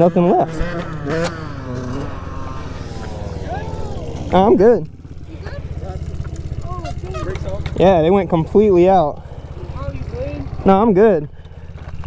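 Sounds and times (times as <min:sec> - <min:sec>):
motorcycle engine idling: 0:00.0 - 0:12.0
engine note sliding down in pitch: 0:00.5 - 0:04.6.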